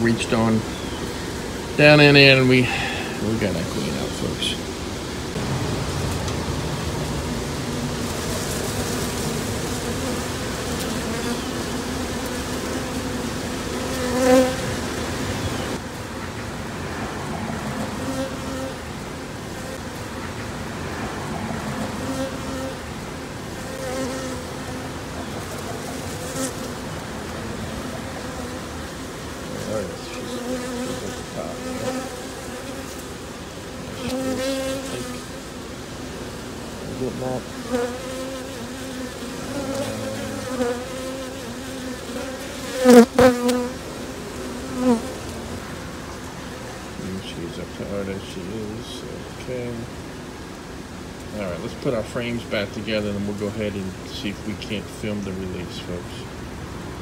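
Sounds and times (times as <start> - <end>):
honey bees buzzing: 0.0 - 57.0.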